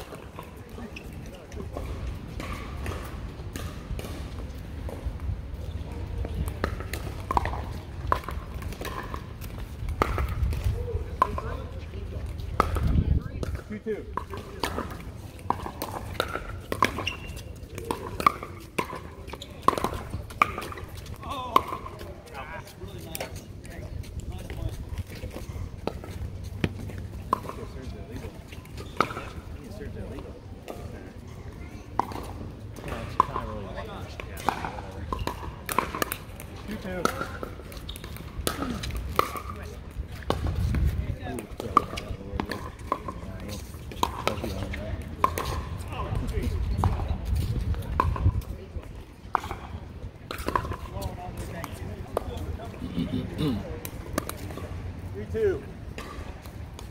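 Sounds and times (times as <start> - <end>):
voices: 10.0 - 56.9.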